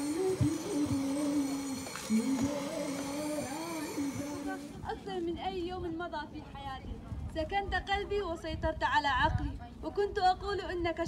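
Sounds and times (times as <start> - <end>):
person singing slow melody: 0.0 - 4.8.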